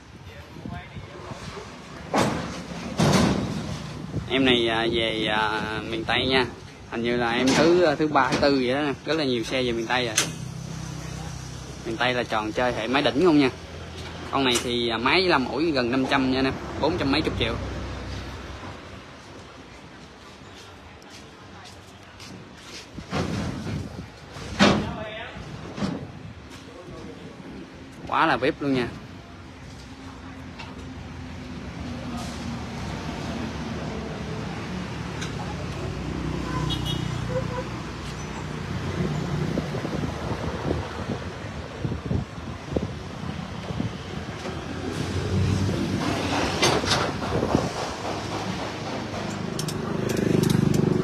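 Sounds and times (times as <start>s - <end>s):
wind buffeting microphone: 0.0s - 1.7s, 3.9s - 6.6s, 38.8s - 51.0s
road traffic: 0.0s - 51.0s
sharp clicks: 49.1s - 50.9s.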